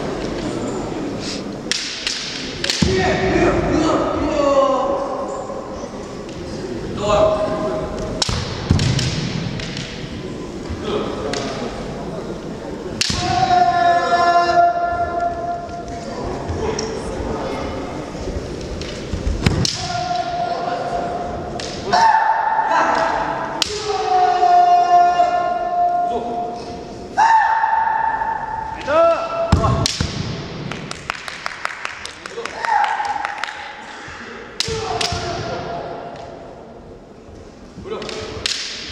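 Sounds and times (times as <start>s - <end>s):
bamboo swords clacking: 1.6s - 3.0s, 8.0s - 10.2s, 13.0s - 13.6s, 21.5s - 21.9s, 38.0s - 38.9s
fighters shouting: 13.0s - 15.7s, 21.8s - 26.5s, 27.2s - 29.9s.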